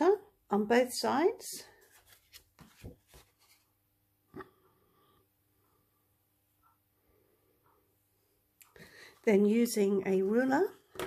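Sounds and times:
paper rustling: 0:01.8 - 0:03.7.

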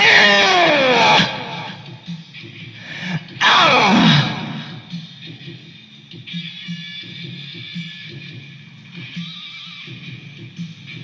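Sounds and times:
rock band music: 0:03.0 - 0:05.0.

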